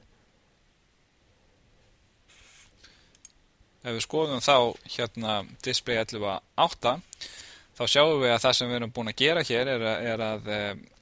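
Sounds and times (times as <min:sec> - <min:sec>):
soft hiss: 0:00.0 - 0:11.0
man speaking: 0:03.8 - 0:07.1, 0:07.8 - 0:10.9.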